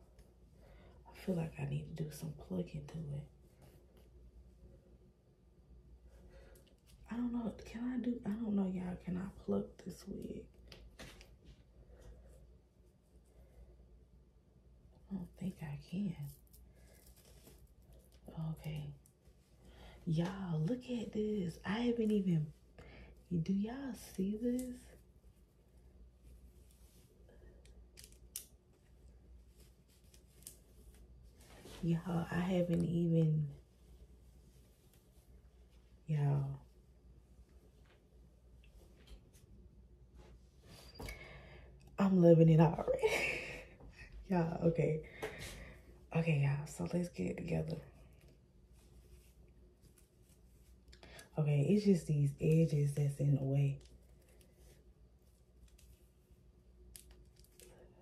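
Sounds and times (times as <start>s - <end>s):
fingers rustling wig braids: 2.2s - 5.0s, 5.9s - 13.7s, 15.2s - 41.1s, 42.5s - 58.0s
fingernails handling wig hair: 26.6s - 31.9s.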